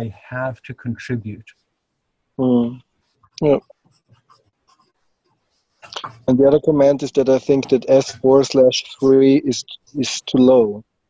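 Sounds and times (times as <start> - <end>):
person saying yeah: 0.0 - 1.4, 2.4 - 2.8, 6.0 - 10.8
faint scratchy sounds: 0.0 - 1.6, 2.4 - 10.8.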